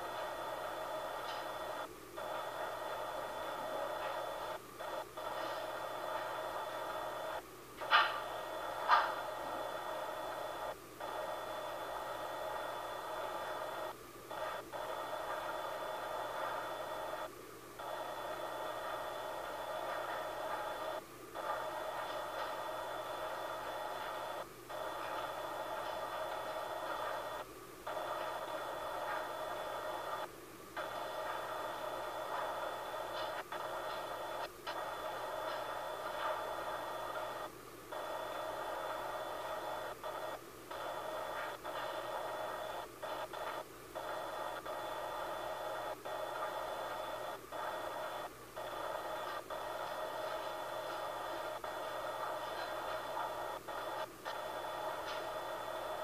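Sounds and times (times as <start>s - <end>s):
electronic hiss and hum: 0.0s - 56.0s.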